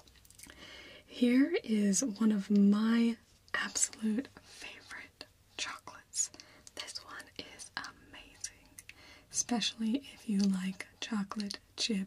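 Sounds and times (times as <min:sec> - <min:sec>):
person whispering: 0:01.4 - 0:12.0.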